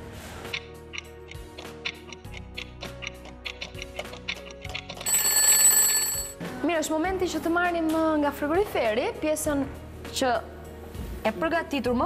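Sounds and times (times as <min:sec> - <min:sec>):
background music: 0:00.0 - 0:12.0
alarm clock bell ringing: 0:05.1 - 0:06.4.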